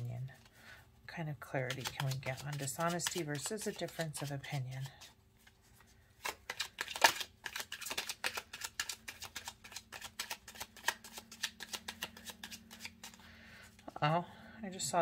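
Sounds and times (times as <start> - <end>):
cards being shuffled: 1.6 - 13.3.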